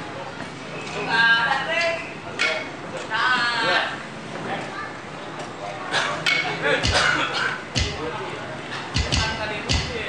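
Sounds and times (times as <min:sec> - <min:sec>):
kick drum thump through pa: 0:09.0 - 0:10.0.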